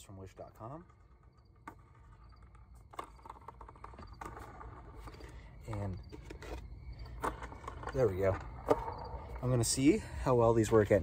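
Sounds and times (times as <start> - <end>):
skateboard clicks and knocks: 0.3 - 9.8.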